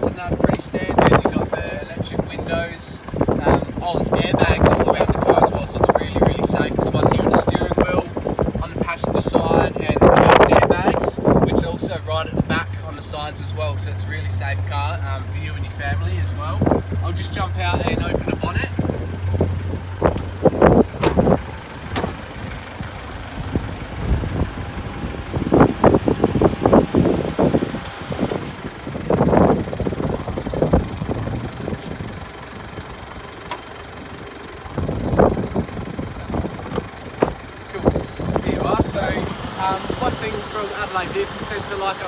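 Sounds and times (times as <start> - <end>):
car engine idling: 0.0 - 42.0
car door and bonnet clunks: 18.8 - 22.4, 36.6 - 37.4.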